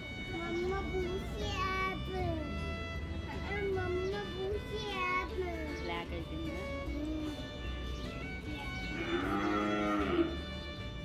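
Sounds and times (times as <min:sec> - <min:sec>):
background music: 0:00.0 - 0:11.0
cow mooing: 0:08.9 - 0:10.4.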